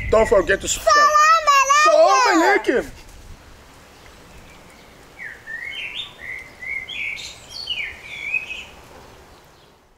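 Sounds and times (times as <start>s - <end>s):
songbird whistled chirps: 4.4s - 8.8s.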